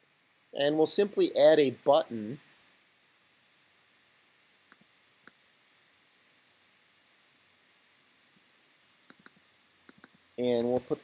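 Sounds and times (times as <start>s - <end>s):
faint computer mouse clicks: 9.1s - 11.0s.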